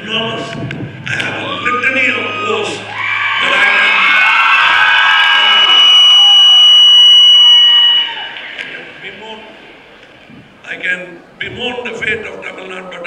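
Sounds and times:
audience cheering and whooping: 1.2 - 9.0
high whistle-like tone: 1.4 - 9.0.

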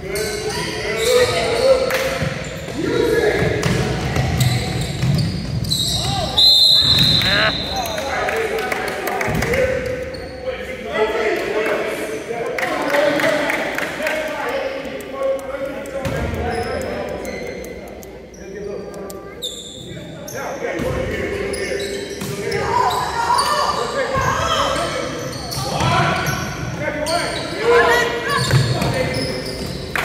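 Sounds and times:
voices calling out echoing: 0.0 - 30.0.

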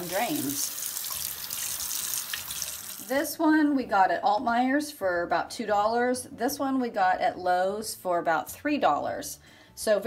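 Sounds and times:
faucet running into sink: 0.0 - 3.1
hands rinsing in basin: 0.0 - 3.1.

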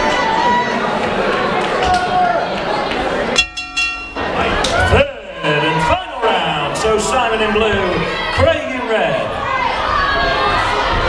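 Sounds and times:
crowd voices and shouting: 0.0 - 11.0.

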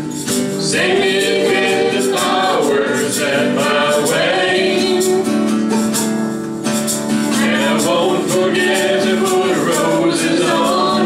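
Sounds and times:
strummed acoustic guitar: 0.0 - 11.0
tambourine rattle: 0.0 - 11.0
voices singing together: 0.6 - 5.9, 7.3 - 11.0.

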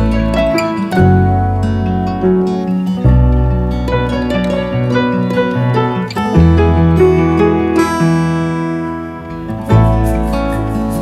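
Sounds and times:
tropical house music: 8.9 - 11.0.

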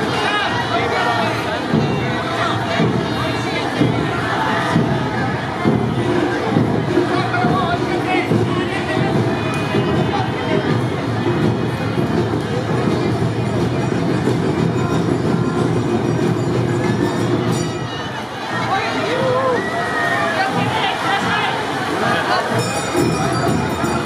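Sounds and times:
crowd of onlookers: 0.0 - 24.0
voices calling out: 0.0 - 24.0.

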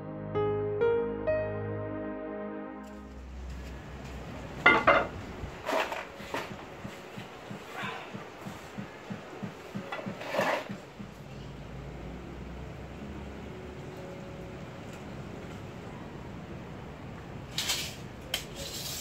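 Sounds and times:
solo piano music: 0.0 - 7.5
knocks and scrapes on wood: 4.7 - 11.2.

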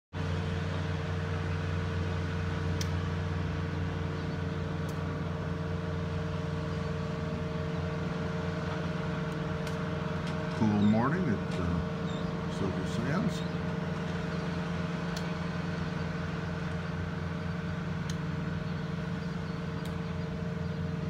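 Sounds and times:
low machine hum: 0.2 - 21.0.

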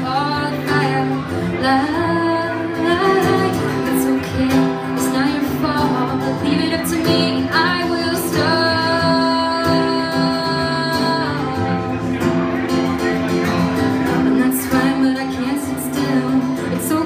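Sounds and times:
woman singing: 0.0 - 12.2, 14.1 - 17.0
acoustic guitar: 0.0 - 17.0.

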